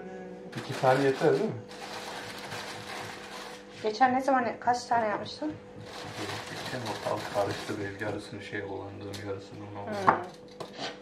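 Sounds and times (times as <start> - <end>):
potato peeler scraping: 0.6 - 3.8, 5.8 - 8.3, 9.9 - 11.0
woman speaking: 3.8 - 5.6, 9.9 - 10.3.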